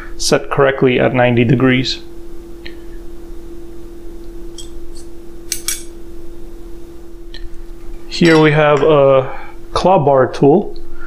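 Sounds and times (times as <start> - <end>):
steady hum: 0.0 - 11.0
sharp metal clinks: 8.1 - 9.2.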